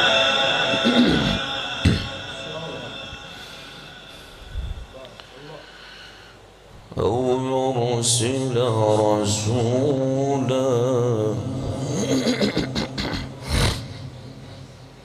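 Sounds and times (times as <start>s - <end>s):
man reciting melodically: 0.0s - 5.9s, 6.9s - 12.5s.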